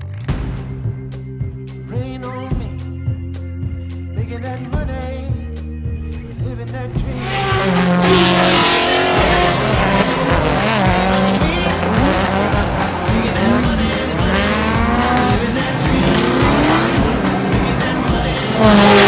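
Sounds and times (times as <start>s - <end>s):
background music with steady beat: 0.0s - 19.0s
car engines revving: 6.8s - 19.0s.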